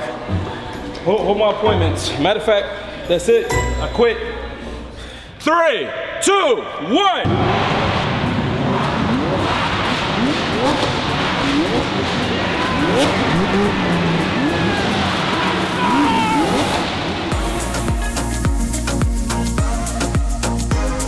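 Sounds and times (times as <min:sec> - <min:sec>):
supercar engines revving: 0:07.5 - 0:17.4
music with steady beat: 0:17.3 - 0:21.0.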